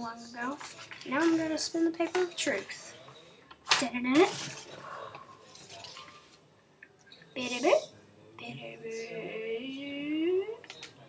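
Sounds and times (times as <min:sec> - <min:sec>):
paper rustling: 0:00.4 - 0:02.9.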